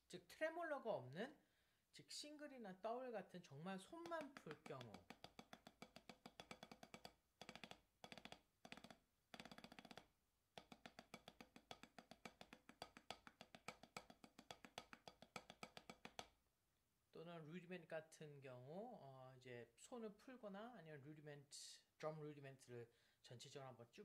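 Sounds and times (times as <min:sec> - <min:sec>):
drumsticks tapping on practice pad: 0:03.8 - 0:16.4.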